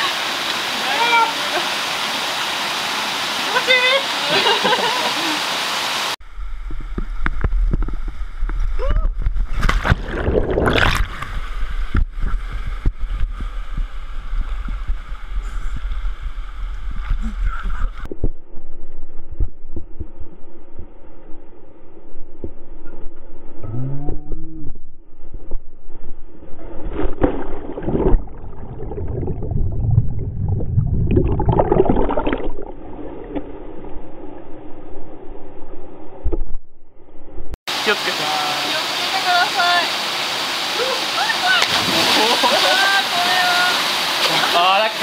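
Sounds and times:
waterfall rushing: 0.0s - 6.2s, 37.7s - 45.0s
underwater churning and bubbling: 6.3s - 22.6s, 26.8s - 36.6s.

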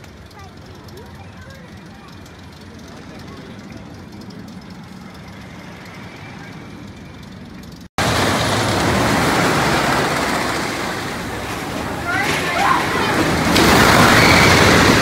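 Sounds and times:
faint outdoor ambience: 0.0s - 15.0s
roller coaster train rumbling: 0.0s - 15.0s.

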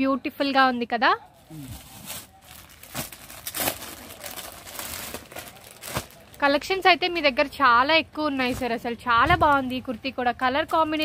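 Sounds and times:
plastic packaging crinkling: 1.6s - 6.8s.

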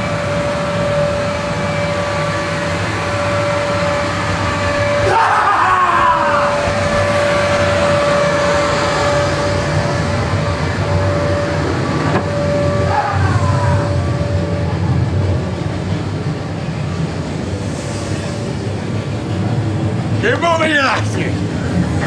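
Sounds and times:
held high tone: 0.0s - 15.3s
low rumbling drone: 0.0s - 22.0s
short falling wail: 4.6s - 9.6s, 12.2s - 14.7s.

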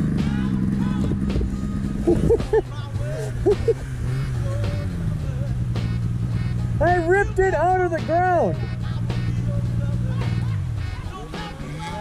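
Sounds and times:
music playing: 0.0s - 12.0s
snowmobile engine running: 0.0s - 12.0s.

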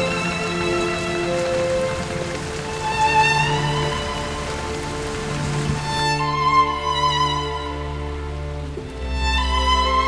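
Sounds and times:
slow music with long held notes: 0.0s - 10.0s
steady rain falling: 0.0s - 10.0s.

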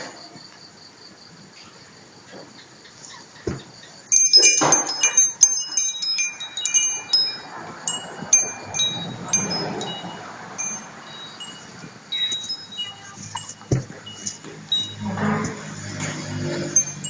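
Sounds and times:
small metal chimes tinkling: 4.0s - 17.0s.

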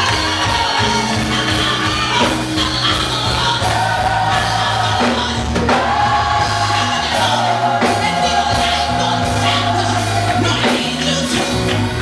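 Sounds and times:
choir singing: 0.0s - 11.5s.

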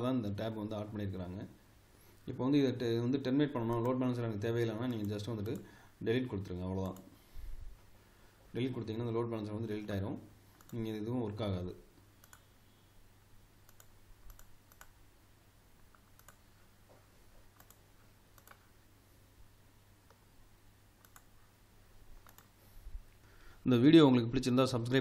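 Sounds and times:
computer mouse clicks: 4.8s - 5.7s, 10.6s - 10.8s, 12.1s - 12.5s, 13.7s - 15.0s, 15.8s - 16.4s, 17.5s - 18.7s, 20.0s - 20.2s, 21.0s - 21.4s, 22.2s - 22.6s.

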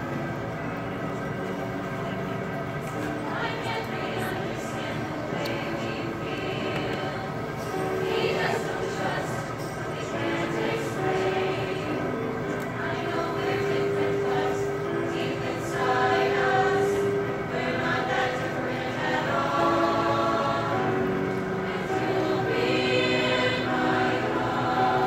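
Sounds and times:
choir singing: 0.0s - 25.0s.

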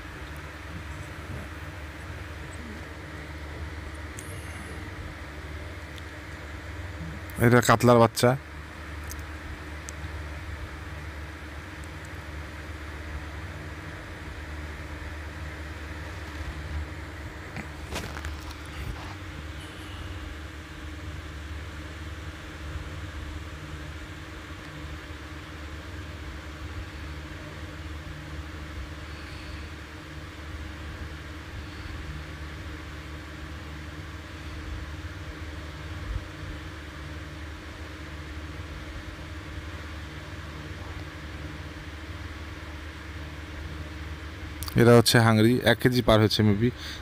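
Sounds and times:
motor humming steadily: 0.0s - 47.0s.

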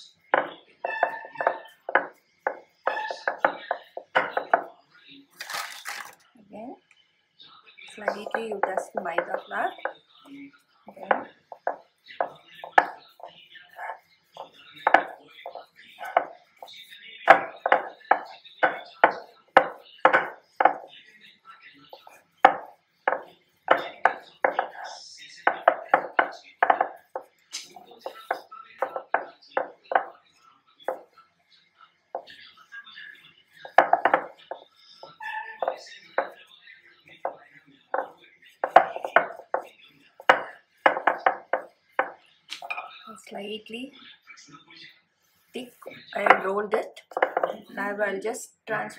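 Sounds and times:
rolling pin knocking on stone board: 0.3s - 4.7s, 8.0s - 10.0s, 11.0s - 20.9s, 22.0s - 27.3s, 28.0s - 30.1s, 33.6s - 36.4s, 37.2s - 42.7s, 46.2s - 47.7s.

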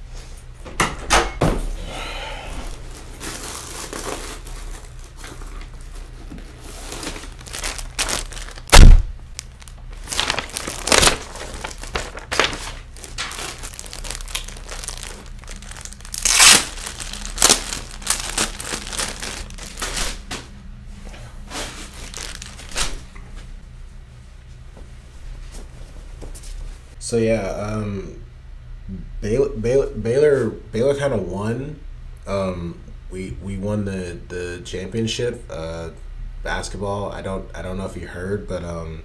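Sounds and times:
heavy thump: 8.7s - 9.2s.

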